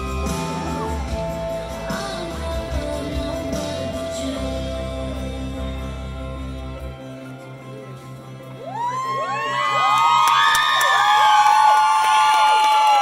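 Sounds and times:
crowd cheering and whooping: 0:00.0 - 0:01.6, 0:08.6 - 0:13.0
clapping: 0:09.9 - 0:13.0.

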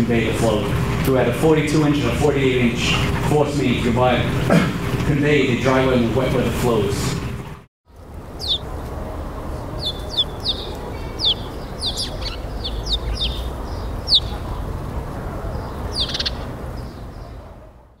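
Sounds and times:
birds chirping: 0:08.3 - 0:08.8, 0:09.5 - 0:18.0.

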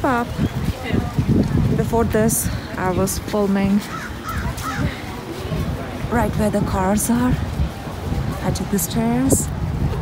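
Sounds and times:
bird cawing: 0:03.9 - 0:04.8.

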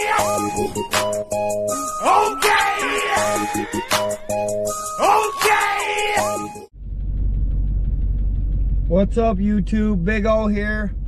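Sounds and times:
truck engine idling: 0:06.7 - 0:11.0.

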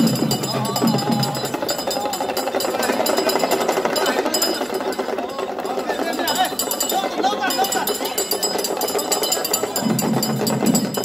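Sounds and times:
crowd voices: 0:00.0 - 0:11.0
fast percussion rattle: 0:00.0 - 0:11.0.

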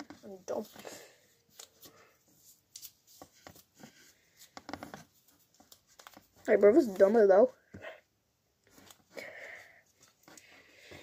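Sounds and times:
faint breathing: 0:00.7 - 0:02.3, 0:09.1 - 0:11.0.

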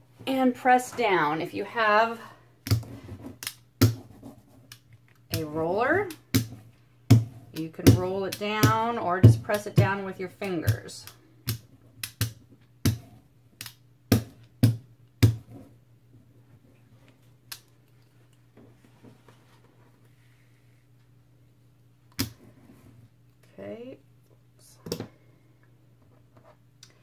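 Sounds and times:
low steady hum: 0:00.0 - 0:27.0.

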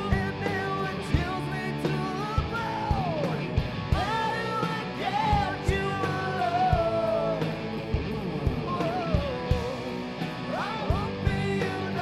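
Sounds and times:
drum beats: 0:00.0 - 0:12.0
live rock band playing: 0:00.0 - 0:12.0
man singing: 0:00.0 - 0:12.0.

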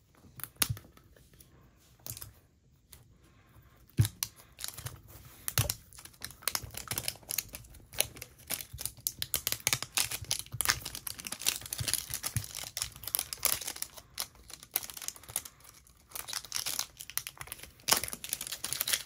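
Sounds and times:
plastic shrink wrap crinkling: 0:04.0 - 0:19.0.

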